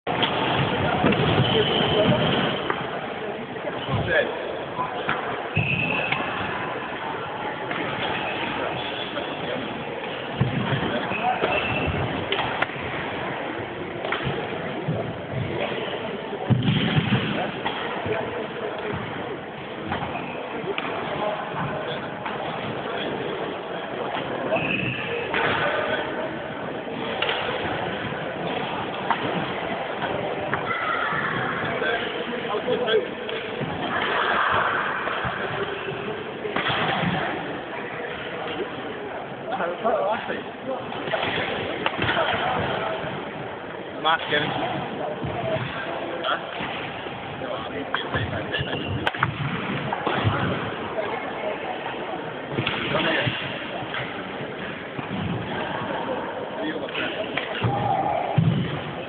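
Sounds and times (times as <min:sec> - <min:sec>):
voices in a hall: 0:00.0 - 0:59.0
rackets hitting shuttlecock: 0:14.0 - 0:15.0, 0:41.0 - 0:42.7, 0:47.9 - 0:50.7.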